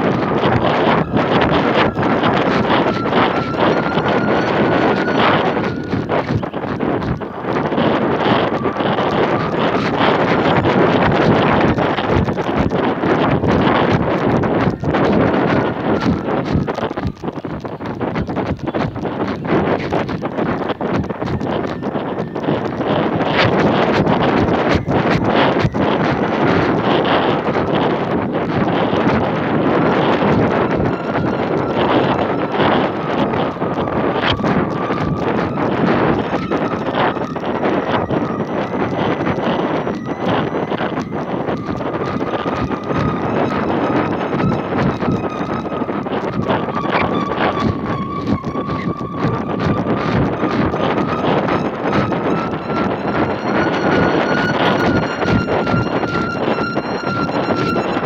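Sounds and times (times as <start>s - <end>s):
faint wavering whistle: 0.0s - 12.5s, 14.6s - 17.8s, 18.6s - 58.0s
wind buffeting microphone: 0.0s - 58.0s.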